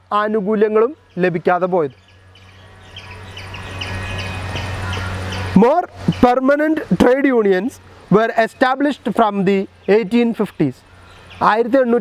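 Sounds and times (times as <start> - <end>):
background hiss: 0.0 - 12.0
small bird chirping: 0.9 - 6.3, 9.5 - 12.0.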